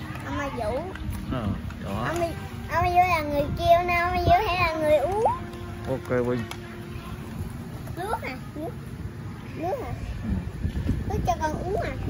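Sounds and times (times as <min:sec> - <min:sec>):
young child singing: 0:02.7 - 0:05.3.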